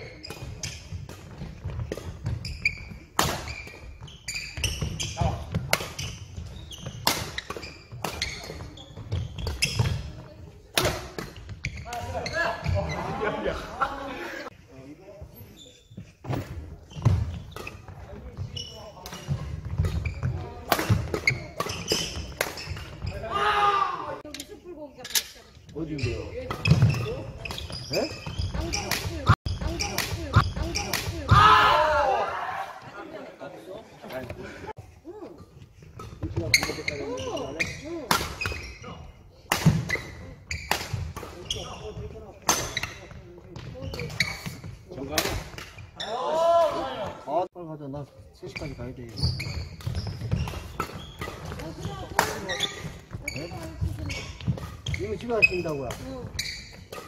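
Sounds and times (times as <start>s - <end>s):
racket striking shuttlecock: 3.1s - 3.8s, 20.6s - 22.9s
players' voices: 7.9s - 49.6s, 50.2s - 57.0s.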